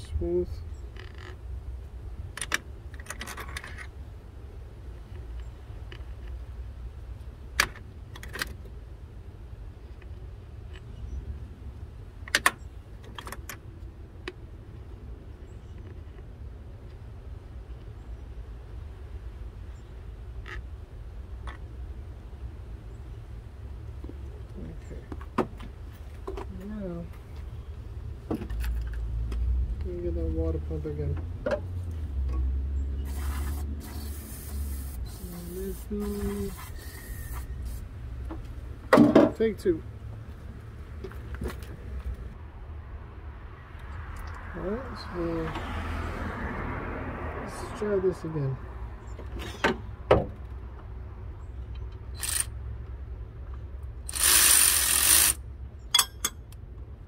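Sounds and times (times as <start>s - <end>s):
burst of hiss: 33.1s - 37.8s
metal clicks of hand tools: 54.1s - 56.6s.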